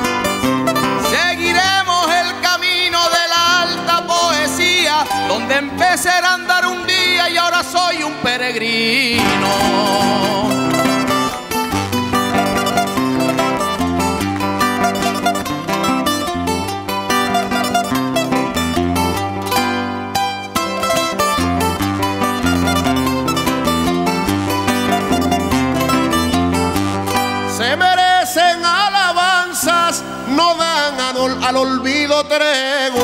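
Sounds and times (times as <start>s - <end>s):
person singing: 0.0s - 33.0s
plucked string ensemble melody: 0.0s - 33.0s
double bass line: 8.9s - 28.6s.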